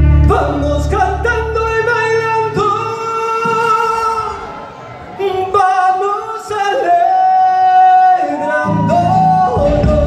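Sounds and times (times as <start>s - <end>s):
low bass: 0.0s - 2.8s, 8.9s - 10.0s
acoustic guitar: 0.0s - 3.9s
man singing: 0.0s - 4.6s, 5.2s - 10.0s.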